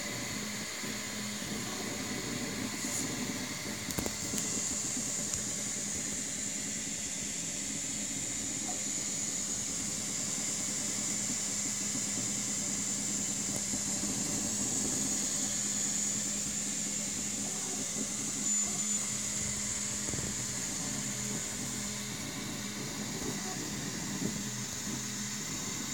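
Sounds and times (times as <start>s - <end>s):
cooling fans hissing: 0.0s - 25.9s
stepper motors whirring: 0.0s - 25.9s.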